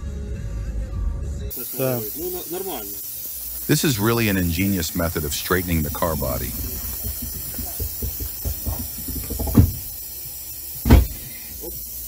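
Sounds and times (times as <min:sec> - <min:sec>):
air bag jack hissing: 0:01.5 - 0:12.0
dull thumps: 0:06.5 - 0:10.0, 0:10.8 - 0:11.3.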